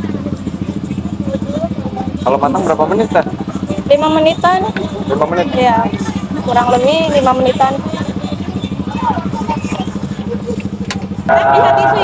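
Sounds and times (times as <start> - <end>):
small engine idling: 0.0 - 12.0.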